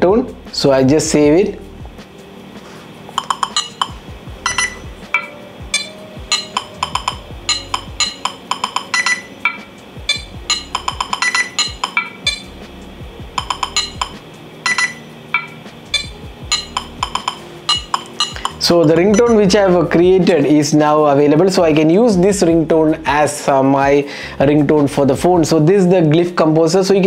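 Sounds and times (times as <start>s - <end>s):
low held tones: 3.2s - 19.9s.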